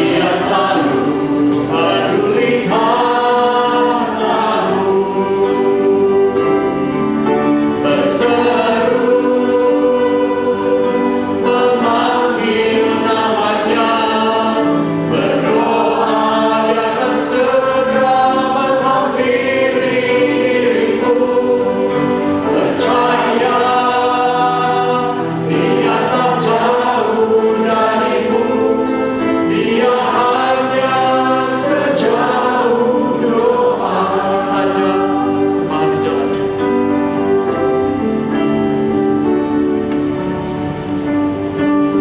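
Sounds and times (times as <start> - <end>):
backing singers in harmony: 0.0 - 38.2
guitar: 0.0 - 42.0
keyboard: 0.0 - 42.0
piano: 0.0 - 42.0
man singing hymn: 11.4 - 21.7, 29.5 - 36.6.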